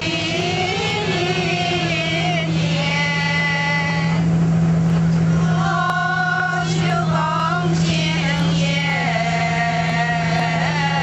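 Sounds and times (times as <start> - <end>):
bus engine droning: 0.0 - 11.0
voices: 0.0 - 11.0.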